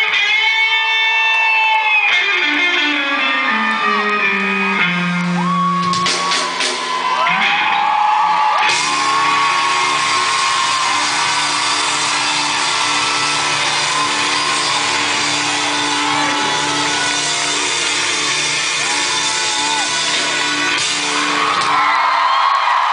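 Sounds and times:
crowd cheering and screaming: 0:00.0 - 0:22.9
shrill whoops: 0:05.2 - 0:17.7
rock band holding a chord: 0:08.6 - 0:21.8.

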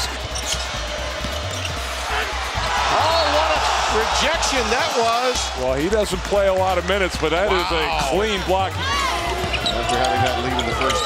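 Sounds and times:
crowd noise: 0:00.0 - 0:11.0
low music: 0:00.1 - 0:11.0.

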